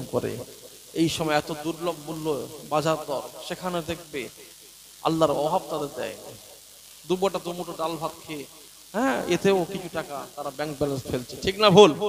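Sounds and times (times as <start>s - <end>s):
man chanting into a microphone: 9.0s - 10.2s.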